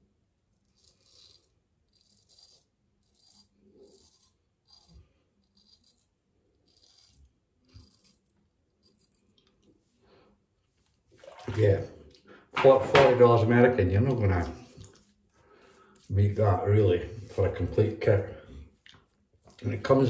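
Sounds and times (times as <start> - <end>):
razor scraping stubble: 0.5 - 9.8, 13.1 - 20.0.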